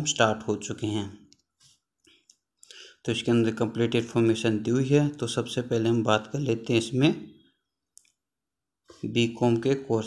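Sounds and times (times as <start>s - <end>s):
man speaking: 0.0s - 1.3s, 3.0s - 7.4s, 8.9s - 10.0s.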